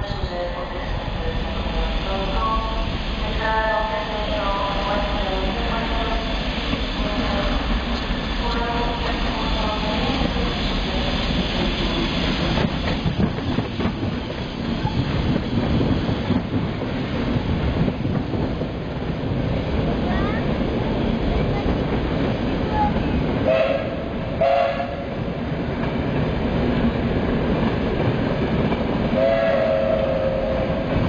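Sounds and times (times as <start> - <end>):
train rolling with steady rumble: 0.0 - 31.0.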